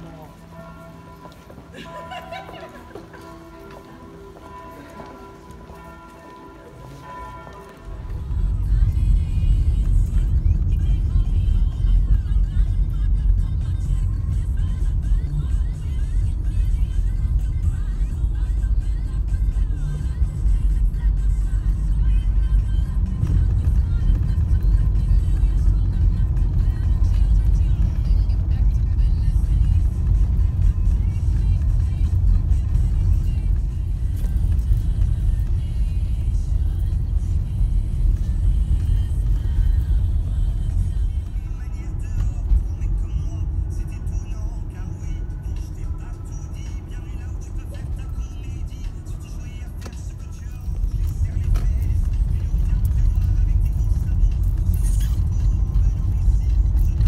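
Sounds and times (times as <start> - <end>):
car engine and tyre rumble: 3.1 - 57.0.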